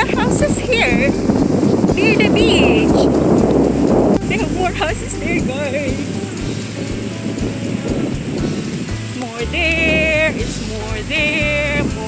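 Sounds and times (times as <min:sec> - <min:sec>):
surf: 0:00.0 - 0:12.0
wind buffeting microphone: 0:00.0 - 0:12.0.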